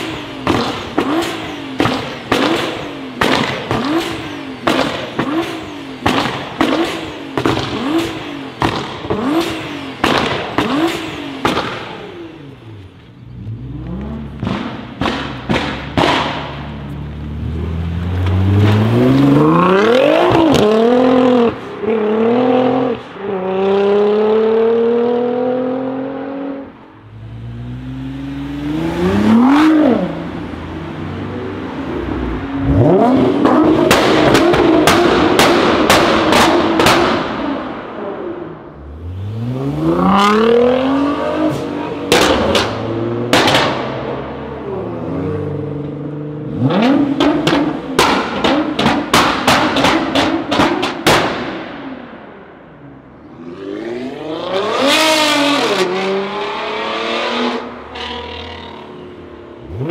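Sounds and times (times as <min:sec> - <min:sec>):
car engine revving: 0:00.0 - 0:52.2, 0:52.8 - 0:59.9
exhaust pops and bangs: 0:00.4 - 0:12.0, 0:14.3 - 0:16.8, 0:33.4 - 0:37.6, 0:42.1 - 0:44.0, 0:47.1 - 0:51.8.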